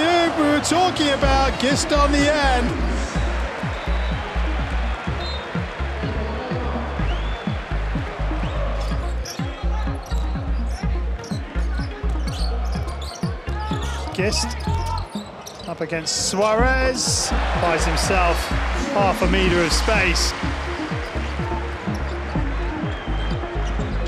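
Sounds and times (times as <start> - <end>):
loud crowd: 0.0 - 24.0.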